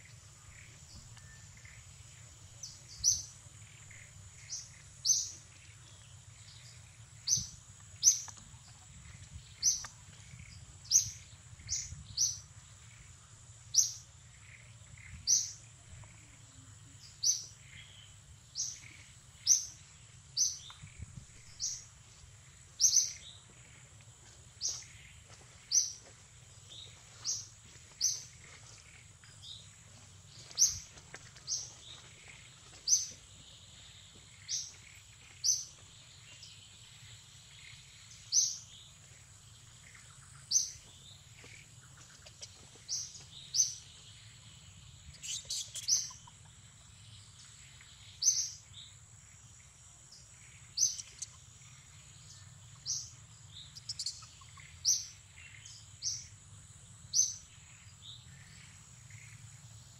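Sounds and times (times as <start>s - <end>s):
bird chirping: 0.0s - 59.9s.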